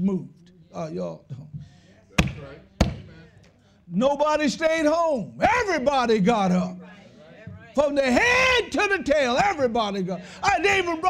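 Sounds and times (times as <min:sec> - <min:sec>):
sharp hand slaps: 0:02.2 - 0:03.1.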